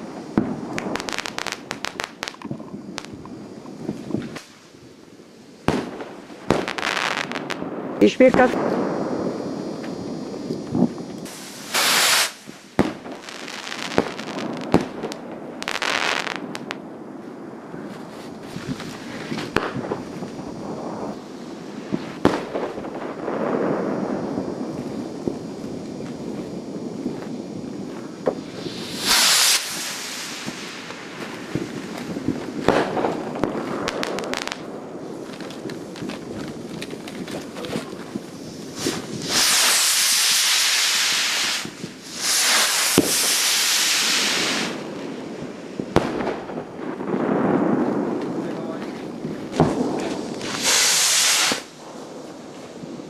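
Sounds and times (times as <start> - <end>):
fireworks bangs: 0.0 - 53.0
fireworks hissing rushes: 0.0 - 53.0.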